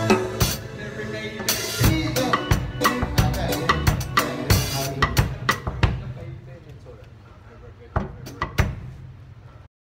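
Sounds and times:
drum kit strokes: 0.0 - 6.5, 7.9 - 9.5.

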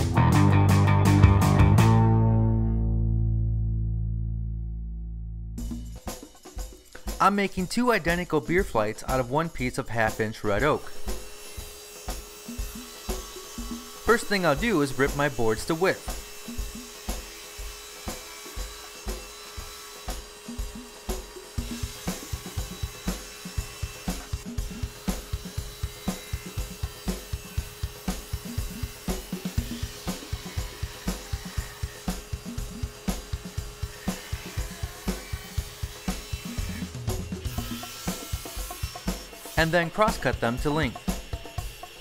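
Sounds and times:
background music with drum beat: 0.0 - 2.2, 5.6 - 42.0.

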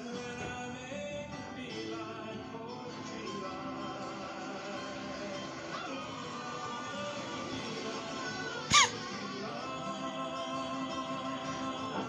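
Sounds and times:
cartoon background music: 5.2 - 12.0
squeaky chirp with click: 8.7 - 8.9.

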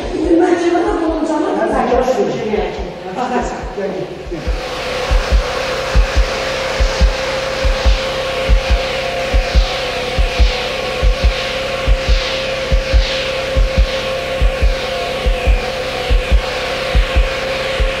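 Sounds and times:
music with steady drum beat: 0.0 - 18.0.

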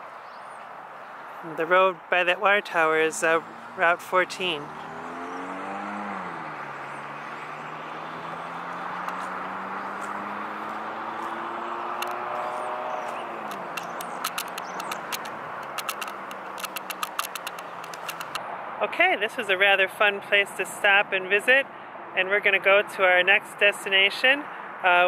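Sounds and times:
road traffic rushing: 0.0 - 25.0
vehicle engine passing by: 2.4 - 18.4
sharp clicks: 11.9 - 12.2, 13.0 - 18.4.

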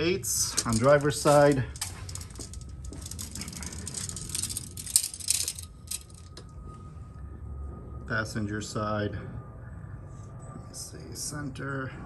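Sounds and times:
faint steady high hum: 0.0 - 12.0
rustling handling noise: 0.4 - 6.7.

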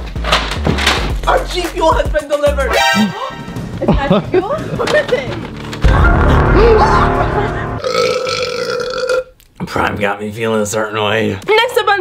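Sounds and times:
background music: 0.0 - 8.9.

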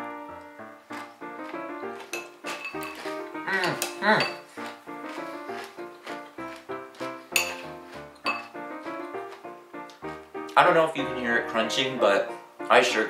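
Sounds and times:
background music: 0.0 - 13.0
spoon clinking against bowl: 2.1 - 4.4, 7.3 - 8.6.

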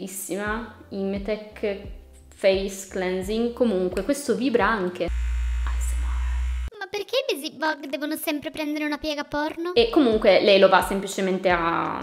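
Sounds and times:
electric brush buzzing: 5.0 - 6.7.

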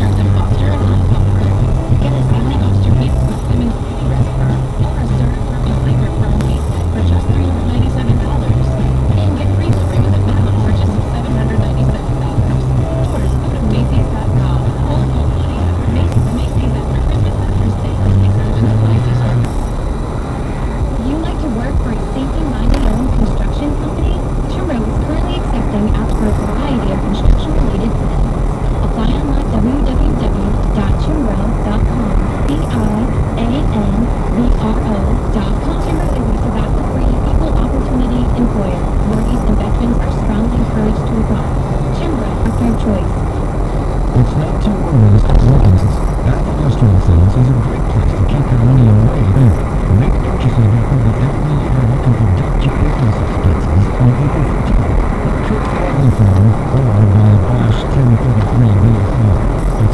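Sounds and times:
car radio playing music: 0.0 - 59.9
deep hum: 0.0 - 59.9
road and engine noise: 0.0 - 59.9.

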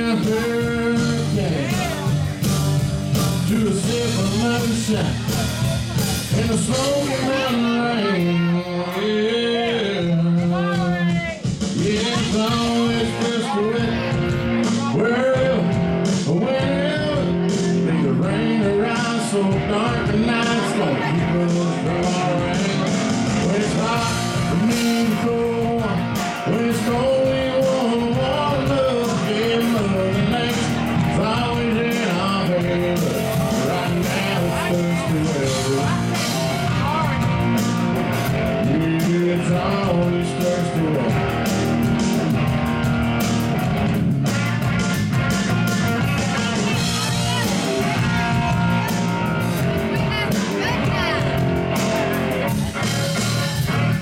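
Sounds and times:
bending melody line: 0.0 - 54.0
country rock band playing: 0.0 - 54.0
electric guitar lead: 0.0 - 54.0.

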